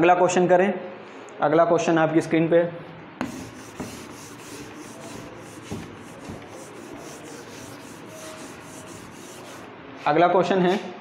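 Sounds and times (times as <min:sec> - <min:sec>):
duster rubbing on whiteboard: 0:03.2 - 0:09.7.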